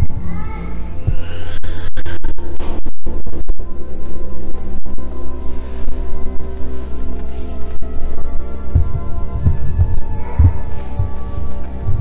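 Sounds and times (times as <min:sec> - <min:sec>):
low thuds: 0:07.1 - 0:12.0.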